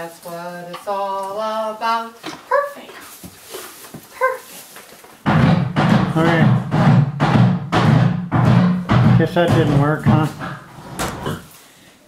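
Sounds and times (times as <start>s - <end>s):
horse banging on sled: 5.2s - 11.4s.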